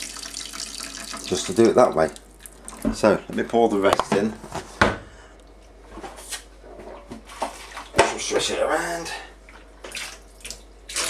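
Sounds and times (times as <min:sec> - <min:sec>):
liquid pouring and splashing into sink: 0:00.0 - 0:03.1.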